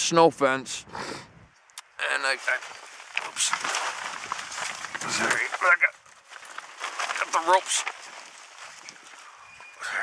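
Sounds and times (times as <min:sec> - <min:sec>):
man speaking: 0:01.8 - 0:03.6.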